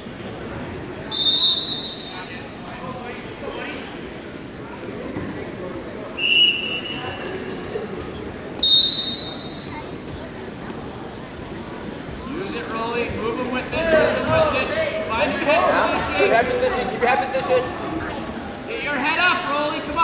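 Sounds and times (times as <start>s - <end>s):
murmur of crowd voices: 0.0s - 20.0s
referee whistle blasts: 1.1s - 2.3s, 6.2s - 7.2s, 8.6s - 9.7s.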